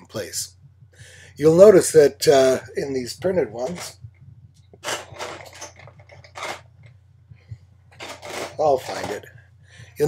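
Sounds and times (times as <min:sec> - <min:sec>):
plastic combs clattering in bin: 0:04.8 - 0:06.7, 0:07.9 - 0:09.3.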